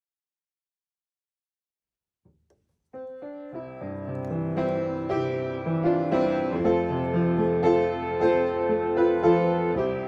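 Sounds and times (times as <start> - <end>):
piano music: 3.0 - 10.0.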